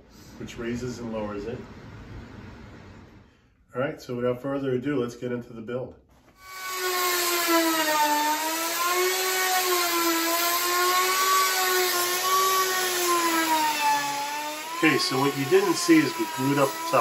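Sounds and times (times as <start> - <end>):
router cutting wood: 6.4 - 17.0.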